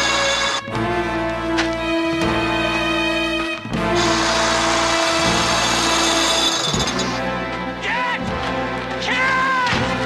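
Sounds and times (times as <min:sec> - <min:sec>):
dramatic orchestral music: 0:00.0 - 0:10.0.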